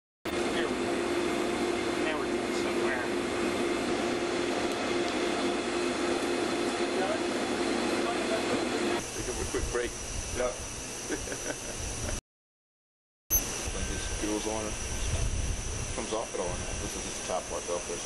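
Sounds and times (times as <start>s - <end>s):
ventilation machinery hum: 0.3s - 12.2s, 13.3s - 18.0s
thin high whine: 13.3s - 18.0s.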